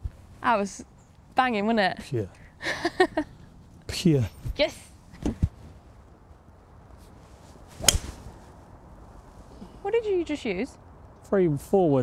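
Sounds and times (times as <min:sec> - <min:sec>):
golf club striking ball: 0:07.8 - 0:08.3.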